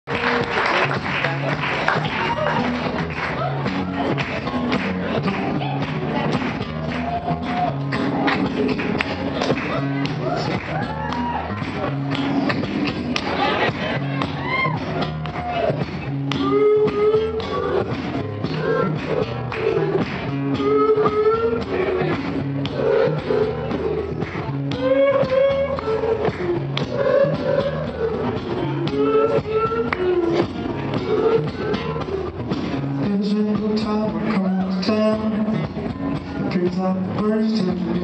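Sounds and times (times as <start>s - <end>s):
bass line: 0.0s - 38.0s
man singing wordlessly: 19.8s - 24.0s, 32.9s - 38.0s.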